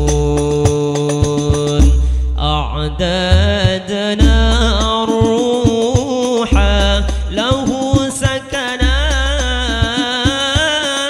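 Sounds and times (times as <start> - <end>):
frame drums: 0.0 - 2.2, 3.3 - 11.0
deep drum booms: 0.0 - 10.7.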